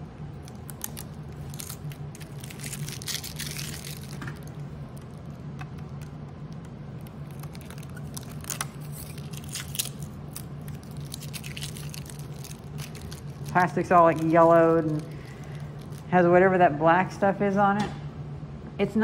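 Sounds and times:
steady low hum: 0.0s - 19.0s
plastic film crinkling: 0.3s - 16.2s.

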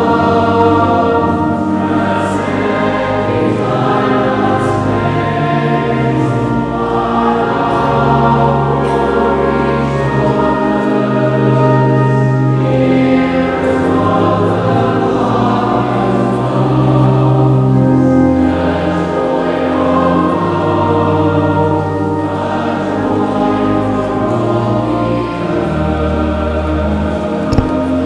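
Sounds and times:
choir singing held chords: 0.0s - 28.0s
low bass line: 27.4s - 28.0s.

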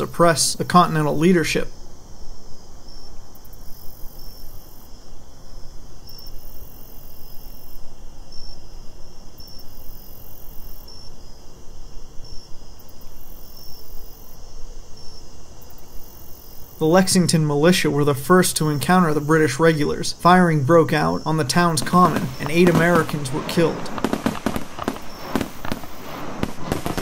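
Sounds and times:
crickets chirping: 0.0s - 27.0s.

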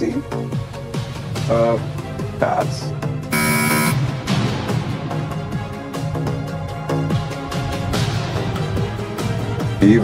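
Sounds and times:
background music: 0.0s - 10.0s
game-show buzzer: 3.3s - 4.0s.

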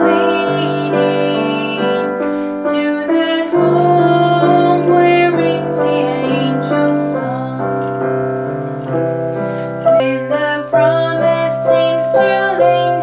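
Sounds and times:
woman singing: 0.0s - 8.3s, 9.8s - 13.0s
piano accompaniment: 0.0s - 13.0s.

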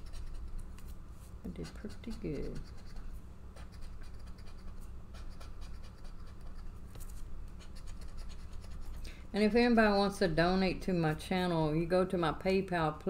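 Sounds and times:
scraper scratching lottery ticket: 0.0s - 0.7s, 1.5s - 6.7s, 7.6s - 8.9s
steady low hum: 0.0s - 13.0s.

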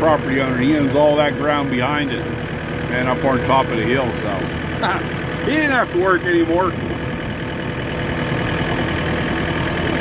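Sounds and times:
ride-on machine engine running: 0.0s - 10.0s.

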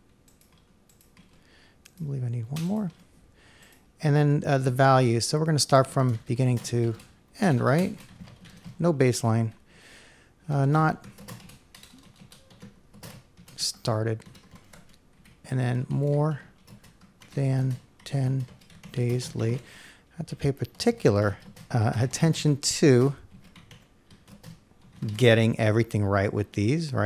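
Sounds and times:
faint typing on a keyboard: 0.0s - 3.9s, 4.7s - 9.6s, 10.5s - 26.3s.

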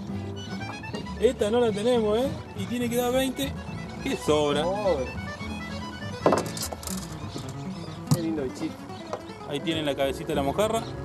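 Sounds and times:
music with held string tones: 0.0s - 11.0s
sharp knock: 6.2s - 6.9s.

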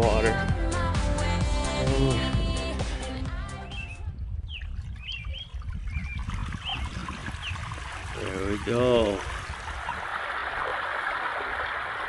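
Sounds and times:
background music: 0.0s - 4.0s
birds chirping: 3.5s - 9.8s
water trickling: 4.2s - 12.0s.

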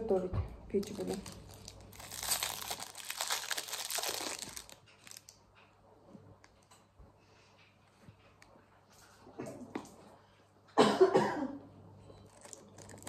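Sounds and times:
candy wrapper crinkling: 0.8s - 5.6s, 12.3s - 13.0s.

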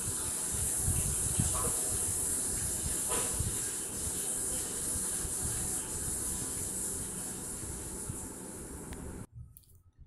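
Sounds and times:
steady high hiss: 0.0s - 9.3s.

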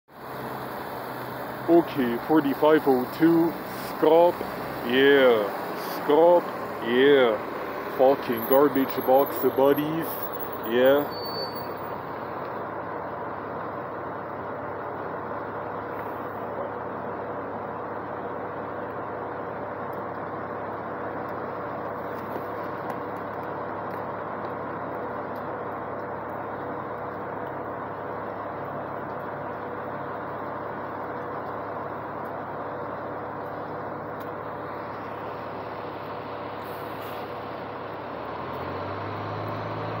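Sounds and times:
bus diesel engine idling: 0.1s - 40.0s.

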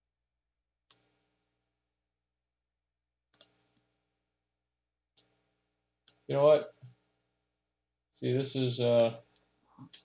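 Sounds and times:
computer mouse clicks: 0.8s - 1.2s, 3.3s - 3.9s, 6.0s - 7.0s, 9.0s - 10.0s.

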